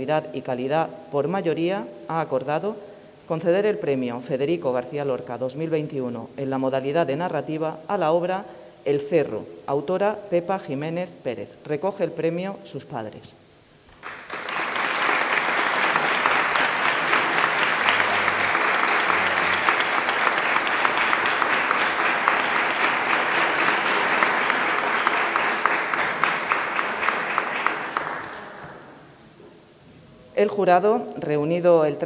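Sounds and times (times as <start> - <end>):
audience applauding: 13.9 - 29.1.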